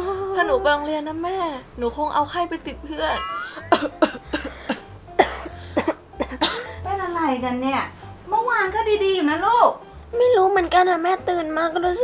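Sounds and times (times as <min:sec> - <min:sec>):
girl coughing: 0:03.1 - 0:06.8.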